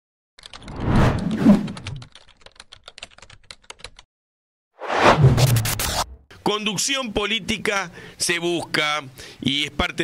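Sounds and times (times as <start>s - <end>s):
rapid keyboard typing: 0.4s - 0.8s, 1.6s - 4.1s.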